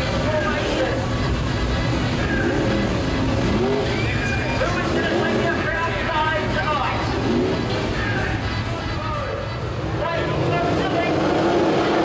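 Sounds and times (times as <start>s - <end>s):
racing car engines revving: 0.0s - 12.0s.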